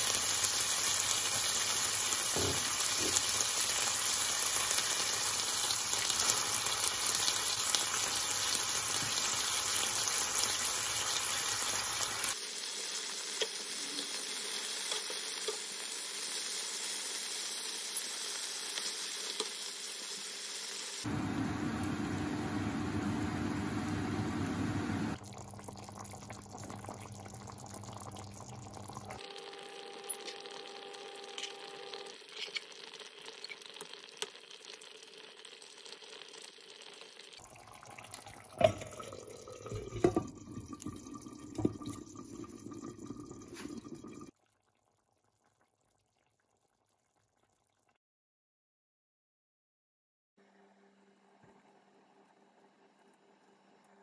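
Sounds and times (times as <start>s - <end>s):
fruit sizzling in a frying pan: 0.0s - 31.0s, 32.1s - 37.5s.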